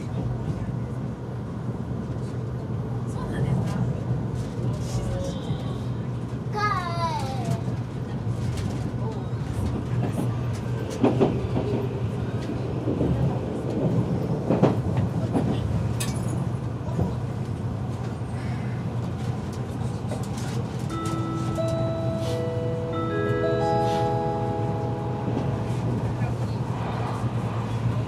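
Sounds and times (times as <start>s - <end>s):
train cabin hum: 6.2s - 28.0s
onboard chime melody: 20.9s - 25.5s
conductor announcement: 20.9s - 26.6s.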